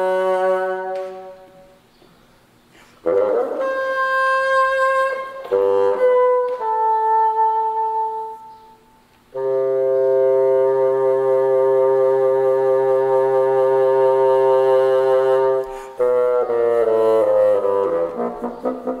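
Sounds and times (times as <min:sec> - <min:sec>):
solo bassoon playing: 0:00.0 - 0:01.8, 0:03.0 - 0:19.0.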